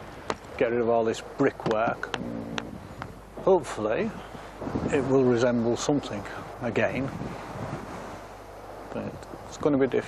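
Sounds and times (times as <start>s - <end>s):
outdoor wind rushing hiss: 0.0s - 10.0s.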